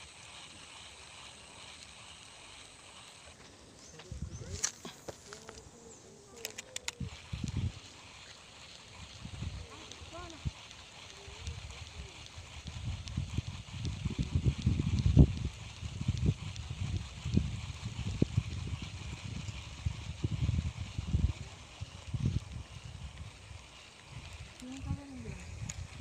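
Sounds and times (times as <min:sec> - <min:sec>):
wind buffeting microphone: 0:03.9 - 0:06.0, 0:06.8 - 0:08.2, 0:08.8 - 0:26.0.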